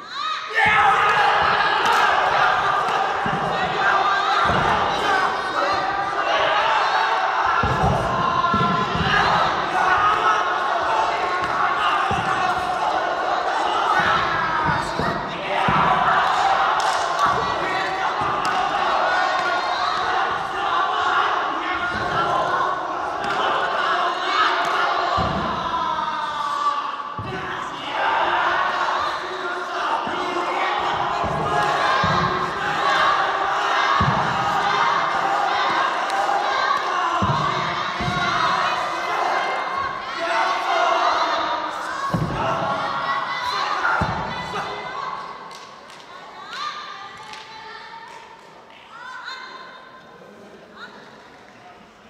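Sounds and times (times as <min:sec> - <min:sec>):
crowd noise in large hall: 0:00.0 - 0:52.0.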